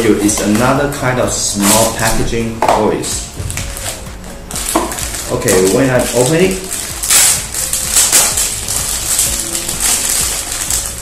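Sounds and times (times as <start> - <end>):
faint background music: 0.0 - 11.0
plastic packet crinkling: 3.4 - 11.0.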